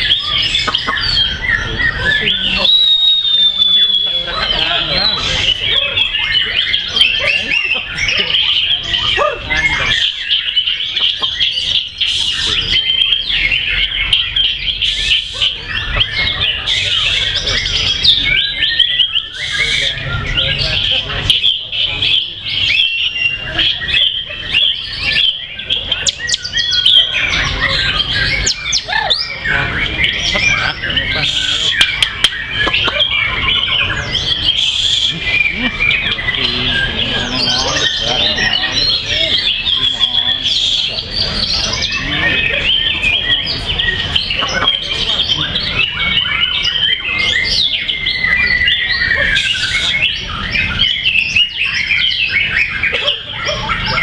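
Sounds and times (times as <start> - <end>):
birds whistling and chirping: 0.0 - 54.0.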